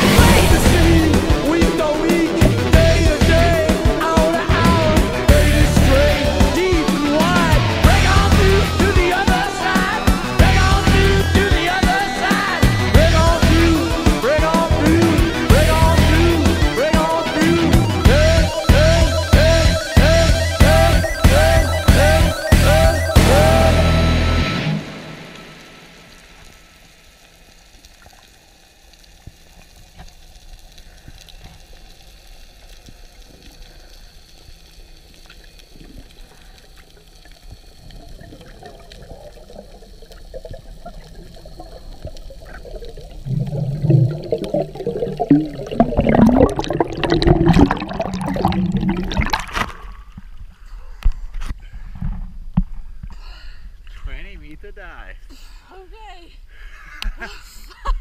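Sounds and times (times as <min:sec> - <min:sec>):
song playing: 0:00.0 - 0:25.5, 0:43.3 - 0:49.5
underwater water noise: 0:00.0 - 0:53.1
water gurgling and bubbling: 0:37.8 - 0:50.2.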